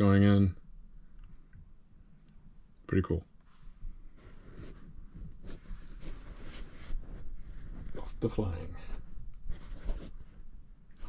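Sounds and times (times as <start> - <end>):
faint rustling and handling: 1.0 - 11.0.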